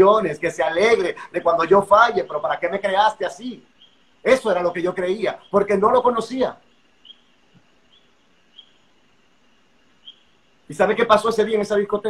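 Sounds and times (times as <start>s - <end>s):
faint high-pitched chirps: 1.1s - 10.8s.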